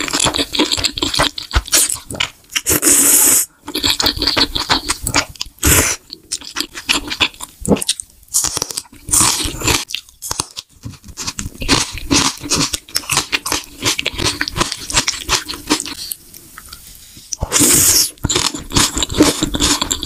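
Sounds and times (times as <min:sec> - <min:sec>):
person chewing crunchy food: 0:00.0 - 0:20.0
wet mouth noises: 0:00.0 - 0:20.0.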